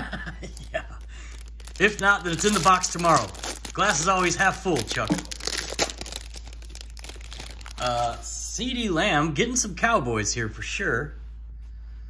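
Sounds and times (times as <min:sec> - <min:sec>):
plastic wrapper crinkling and tearing: 0:00.4 - 0:08.3.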